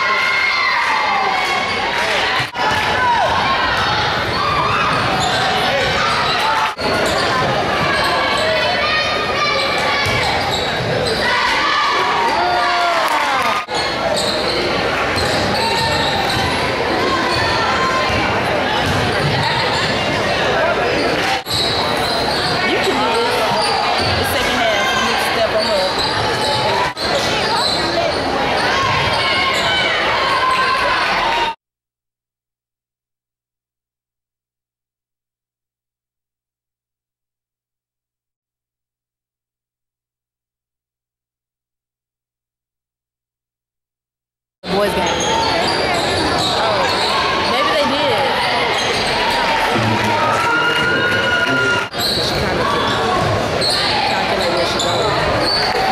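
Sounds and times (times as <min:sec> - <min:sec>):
spectators talking and calling out: 0:00.0 - 0:31.6, 0:44.6 - 0:55.9
basketball bouncing on court: 0:10.0 - 0:11.2, 0:17.3 - 0:20.1
voices calling out: 0:44.7 - 0:55.9.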